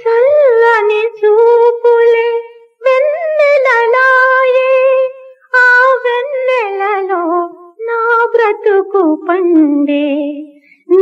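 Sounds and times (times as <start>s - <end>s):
woman singing unaccompanied: 0.0s - 11.0s.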